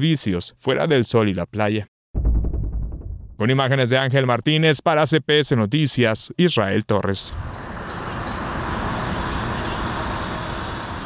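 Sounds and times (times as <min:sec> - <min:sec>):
road traffic noise: 0:07.3 - 0:11.0.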